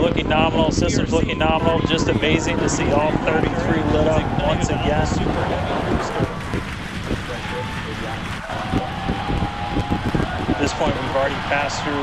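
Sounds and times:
distant rocket engines rumbling: 0:00.0 - 0:12.0.

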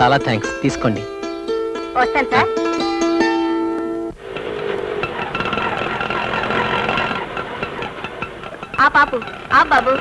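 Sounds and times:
auto-rickshaw engine running: 0:00.0 - 0:10.0.

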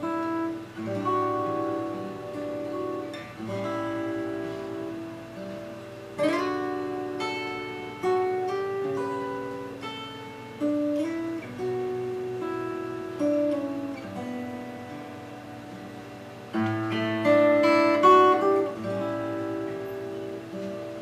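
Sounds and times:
solo acoustic guitar: 0:00.0 - 0:21.0.

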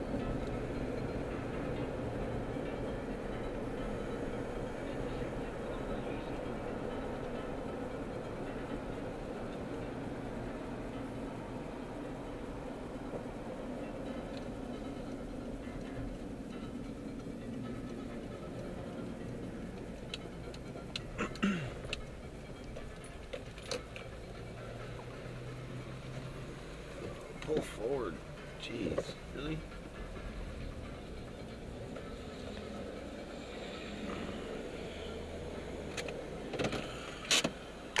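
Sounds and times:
engine and road hum: 0:00.0 - 0:38.0.

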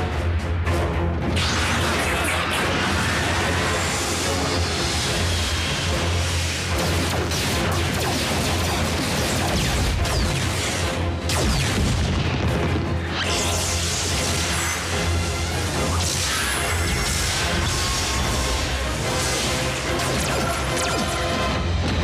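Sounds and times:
dramatic background music: 0:00.0 - 0:22.0
explosions: 0:06.7 - 0:13.4.

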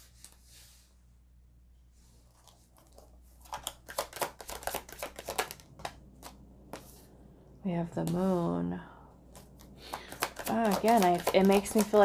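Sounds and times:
cards being shuffled: 0:03.4 - 0:07.0, 0:09.3 - 0:12.0.

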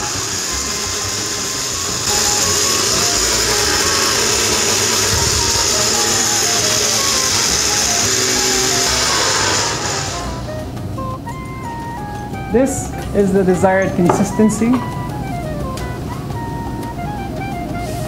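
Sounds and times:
electric blender running: 0:00.0 - 0:13.0, 0:14.9 - 0:17.9.

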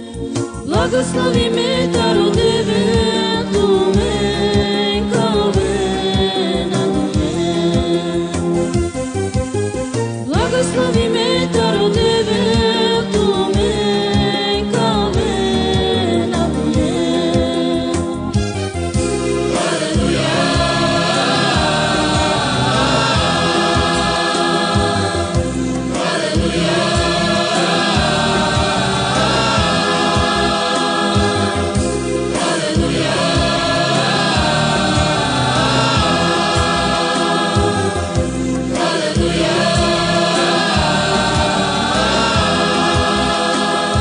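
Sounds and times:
choir singing gospel song: 0:00.0 - 0:44.0.

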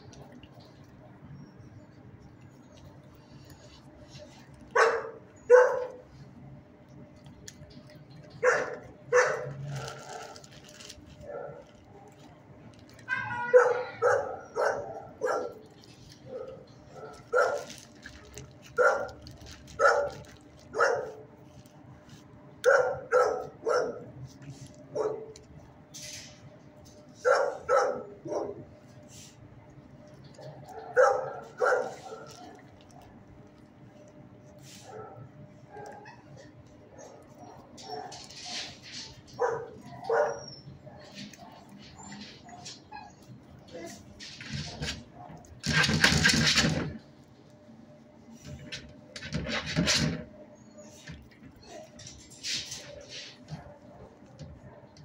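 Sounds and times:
dog barking: 0:04.7 - 0:06.0, 0:08.4 - 0:10.4, 0:11.3 - 0:11.7, 0:13.1 - 0:15.6, 0:16.3 - 0:17.8, 0:18.8 - 0:19.2, 0:19.8 - 0:21.2, 0:22.6 - 0:24.1, 0:24.9 - 0:25.4, 0:27.2 - 0:28.7, 0:30.4 - 0:33.1, 0:34.8 - 0:38.6, 0:39.3 - 0:41.7.

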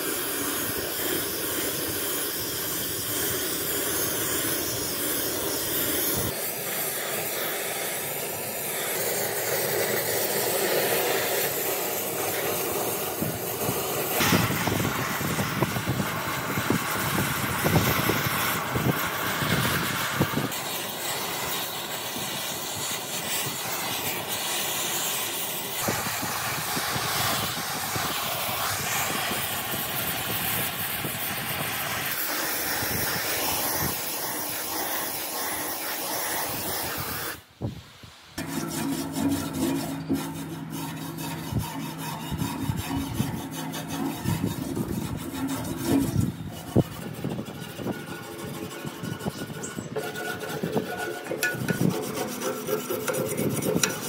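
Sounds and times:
cutting torch hissing: 0:00.0 - 0:54.0.

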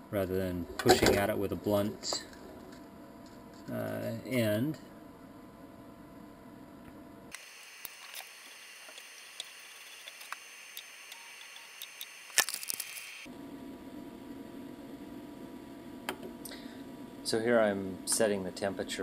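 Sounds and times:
low room hum: 0:00.0 - 0:19.0
clicks and handling noise: 0:07.8 - 0:13.1.

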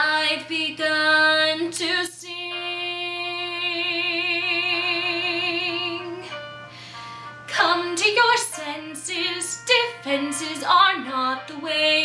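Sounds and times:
woman singing ballad: 0:00.0 - 0:06.6, 0:07.5 - 0:12.0.

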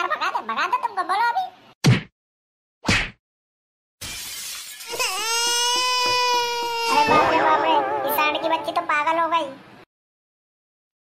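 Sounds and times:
glassy crash: 0:04.0 - 0:05.0
cartoon sharp hit: 0:06.9 - 0:08.2
high-pitched wailing note: 0:06.9 - 0:08.9.

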